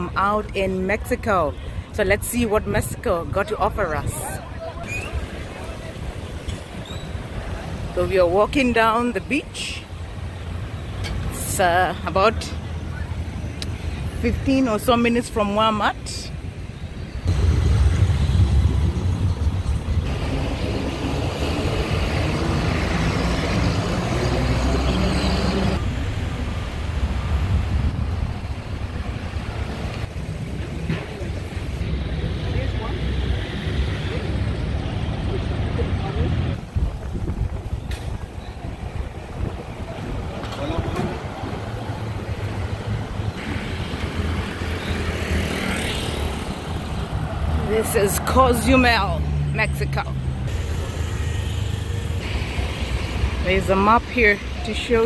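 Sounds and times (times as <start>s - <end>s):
cars passing on road: 0.0s - 55.0s
low rumble: 17.3s - 21.4s.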